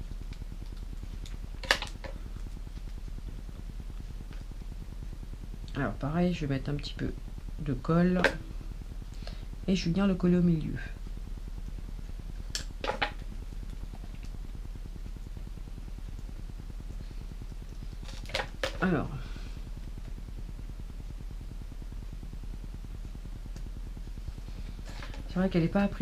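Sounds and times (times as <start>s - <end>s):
low electrical hum: 0.0s - 26.0s.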